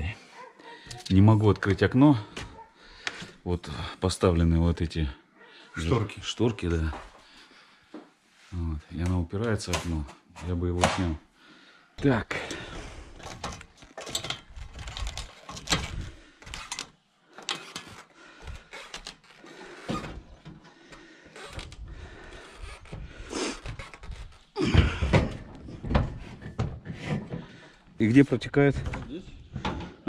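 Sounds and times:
footsteps on metal ladder and roof: 12.1 - 16.8, 17.5 - 30.0.

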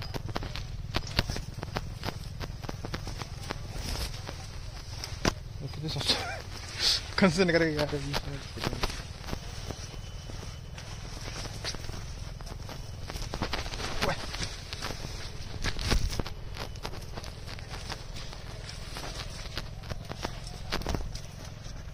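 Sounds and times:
footsteps through plants: 0.0 - 21.9
plants rustling and crackling: 0.0 - 21.9.

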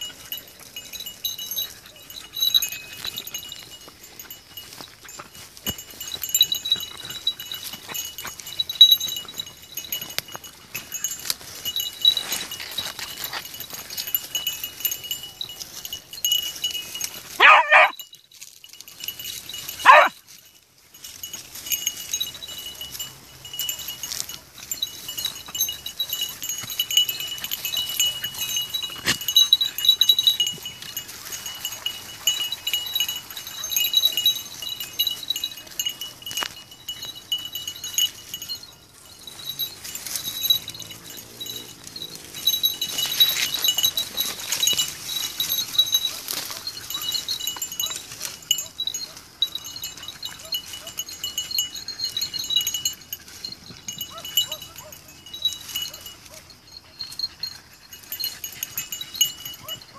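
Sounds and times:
dog collar bells jingling: 0.0 - 59.9
dog yelping: 17.4 - 18.0, 19.8 - 20.2, 54.0 - 55.2, 55.9 - 59.9.

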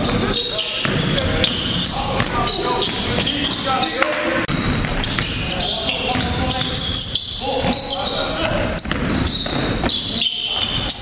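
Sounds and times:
basketball bouncing on gym floor: 0.0 - 3.4, 4.5 - 7.0, 8.7 - 10.1
players' voices: 0.0 - 11.0.

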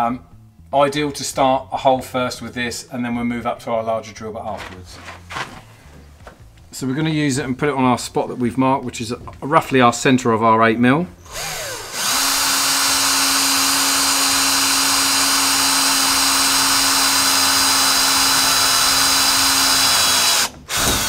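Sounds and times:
cordless drill drilling sheet steel: 11.2 - 21.0.

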